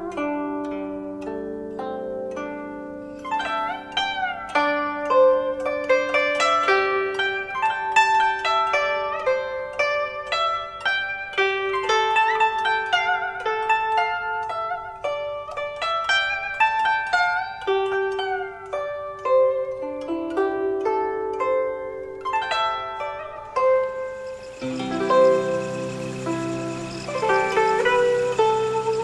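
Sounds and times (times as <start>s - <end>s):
zither plucked melody: 0.0s - 29.0s.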